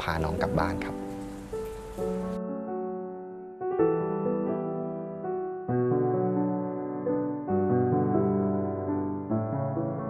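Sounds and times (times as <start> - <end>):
faint hiss: 0.0 - 2.4
soft keyboard music: 0.0 - 10.0.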